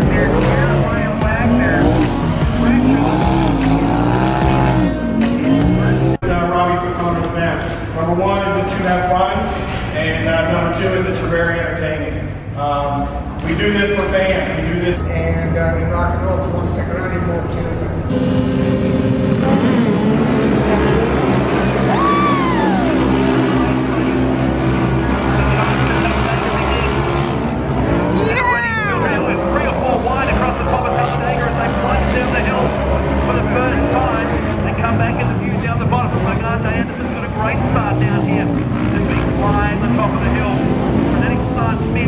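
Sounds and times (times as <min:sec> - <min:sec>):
utv engines revving hard: 0:00.0 - 0:06.3, 0:12.1 - 0:42.0.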